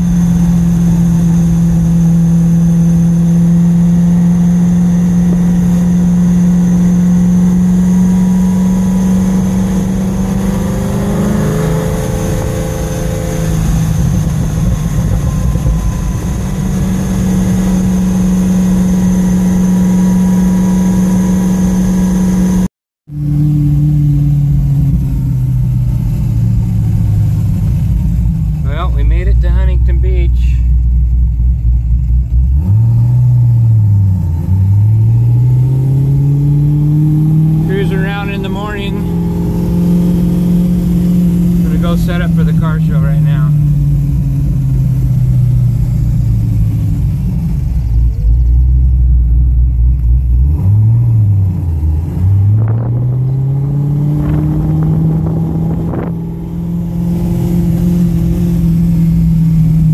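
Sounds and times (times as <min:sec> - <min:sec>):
car engine from inside cabin: 0:00.0 - 0:59.9.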